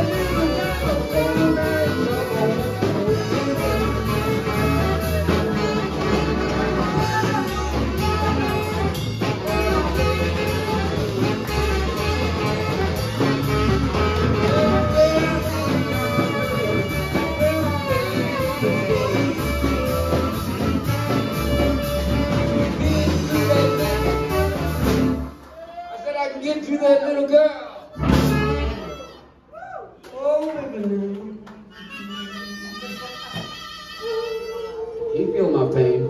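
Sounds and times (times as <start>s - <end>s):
saxophone solo: 0.0s - 25.4s, 27.8s - 29.4s, 31.7s - 36.0s
blues band playing: 0.0s - 29.5s, 30.8s - 36.0s.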